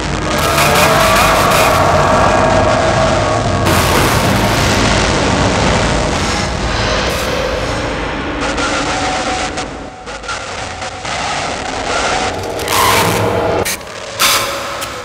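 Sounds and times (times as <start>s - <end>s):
loud dense rumbling: 0.0s - 14.2s.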